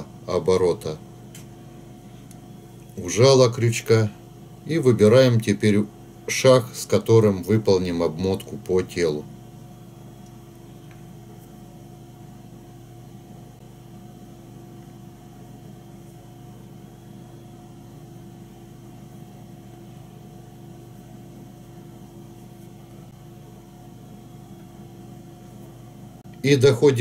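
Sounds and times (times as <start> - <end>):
steady room hum: 0.0 - 27.0.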